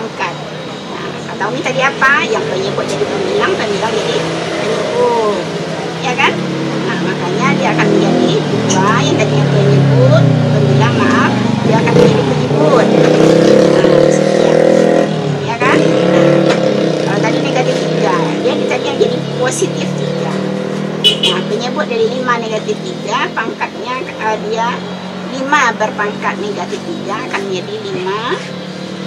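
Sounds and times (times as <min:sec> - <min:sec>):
faint voices: 0:00.0 - 0:28.6
vehicle engine running: 0:00.0 - 0:29.0.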